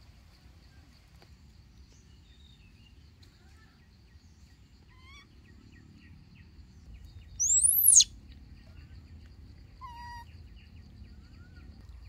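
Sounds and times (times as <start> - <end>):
faint bird chirps: 7.3 - 9.1
high sweeping bird whistle: 7.4 - 8.1
short lower bird call: 7.4 - 8.1.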